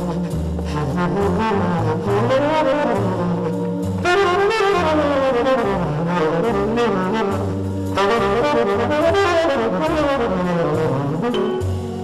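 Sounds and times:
jazz band playing: 0:00.0 - 0:12.0
walking bass: 0:00.0 - 0:12.0.

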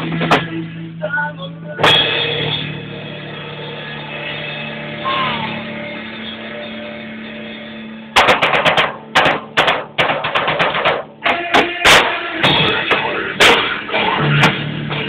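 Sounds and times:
drum kit quick hits: 0:00.0 - 0:00.6, 0:01.8 - 0:03.0, 0:08.2 - 0:15.0.

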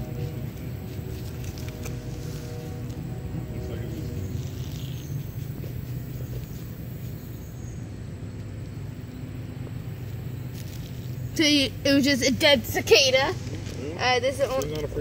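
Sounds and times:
faint voices: 0:00.0 - 0:07.3
steady low rumble: 0:00.0 - 0:15.0.

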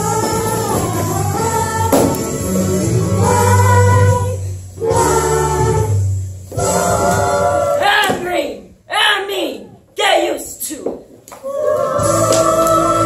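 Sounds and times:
musical accompaniment: 0:00.0 - 0:07.8, 0:11.7 - 0:13.0
group singing together: 0:00.0 - 0:08.2, 0:11.4 - 0:13.0.

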